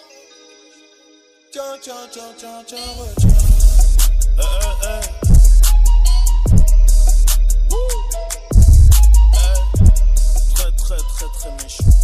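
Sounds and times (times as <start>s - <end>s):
rapping over a beat: 1.5s - 12.0s
crisp hi-hats: 2.9s - 12.0s
heavy bass hit: 3.1s - 7.9s, 8.5s - 10.7s
deep bass: 3.1s - 12.0s.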